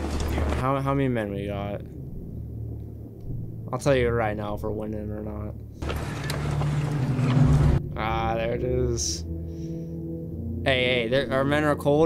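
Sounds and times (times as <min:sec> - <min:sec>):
low drone: 0:05.5 - 0:11.8.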